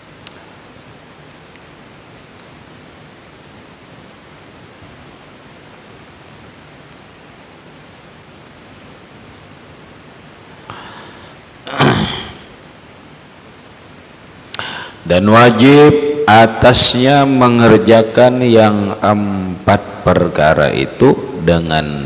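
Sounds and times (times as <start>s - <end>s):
steady hiss: 0.0s - 22.0s
faint click: 0.2s - 0.4s.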